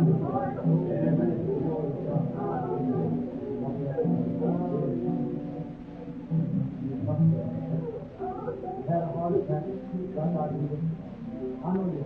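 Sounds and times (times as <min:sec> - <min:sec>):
congregation praying aloud: 0:00.0 - 0:05.7.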